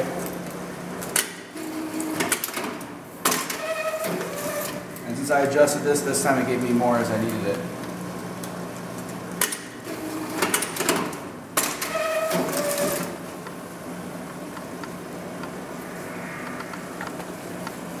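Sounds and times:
steady low hum: 13.2 - 18.0
brief motor whine: 15.6 - 18.0.

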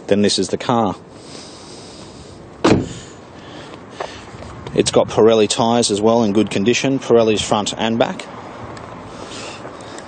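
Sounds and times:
low steady background hiss: 0.0 - 8.2
car door shutting: 2.6 - 3.2.

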